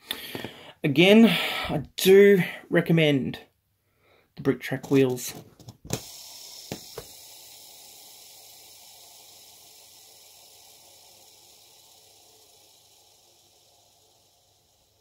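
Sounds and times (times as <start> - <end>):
toy train wheels whirring: 4.8 - 15.0.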